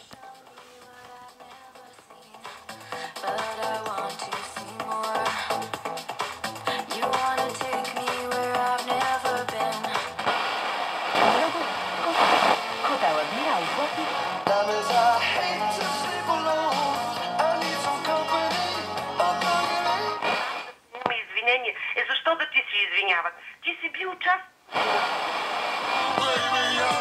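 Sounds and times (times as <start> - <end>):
radio music with voice: 8.5 - 17.4, 20.2 - 27.0.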